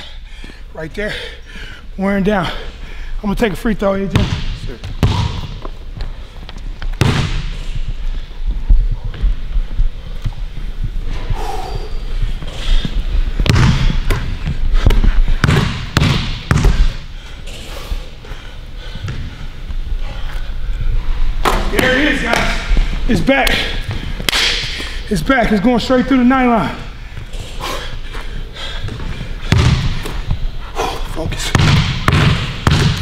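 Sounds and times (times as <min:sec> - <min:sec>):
basketball bouncing on hardwood: 0:04.1 - 0:05.5, 0:13.4 - 0:16.8, 0:28.9 - 0:29.9, 0:31.6 - 0:33.0.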